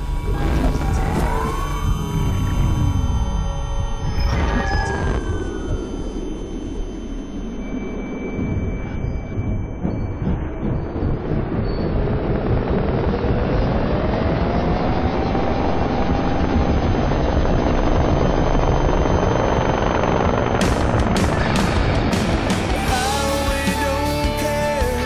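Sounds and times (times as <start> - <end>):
helicopter rotor beating: 0.0 - 24.9
rising whine: 0.0 - 25.0
rock music drums and cymbals: 20.6 - 25.0.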